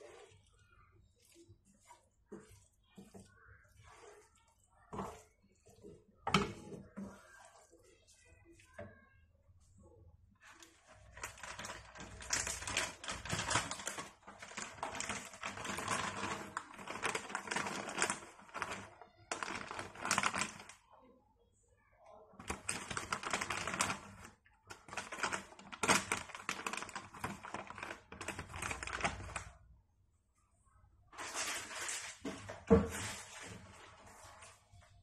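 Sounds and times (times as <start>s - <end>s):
wooden spatula stirring pasta in pan: 0.0s - 20.7s.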